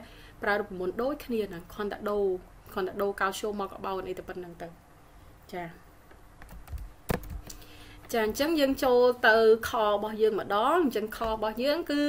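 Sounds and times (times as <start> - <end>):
keyboard or mouse clicks: 6.4 - 7.6.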